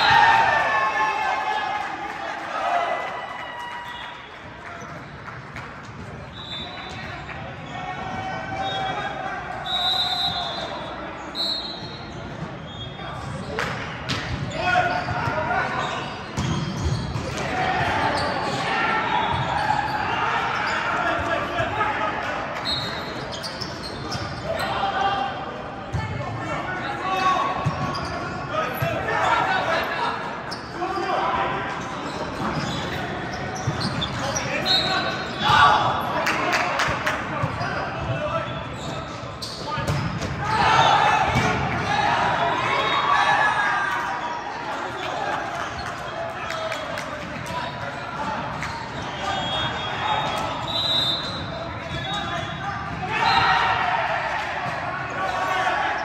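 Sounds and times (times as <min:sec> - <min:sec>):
volleyball hitting court: 0:41.2 - 0:41.9.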